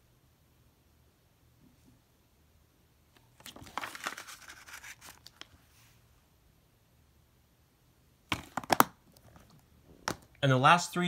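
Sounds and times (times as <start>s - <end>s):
plastic case clicking shut: 8.3s - 9.0s.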